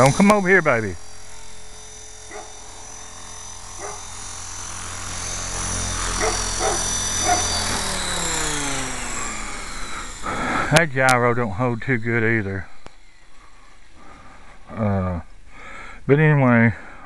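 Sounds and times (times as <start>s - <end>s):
rc helicopter motor whining: 0.0s - 17.0s
dog barking: 2.3s - 2.5s, 3.8s - 4.0s, 6.2s - 7.5s.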